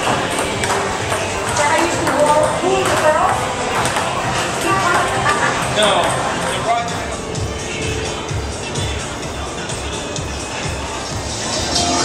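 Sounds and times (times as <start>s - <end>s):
people's voices: 0.0s - 12.0s
table tennis ball clicking: 0.3s - 5.1s.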